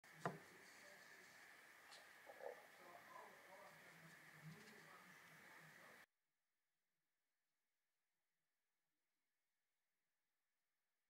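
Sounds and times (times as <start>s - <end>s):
faint steady hiss: 0.0s - 6.1s.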